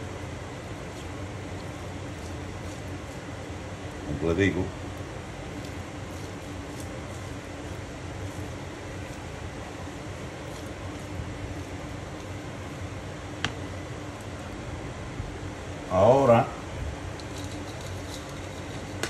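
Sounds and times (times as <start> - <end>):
ventilation fan humming: 0.0 - 19.0.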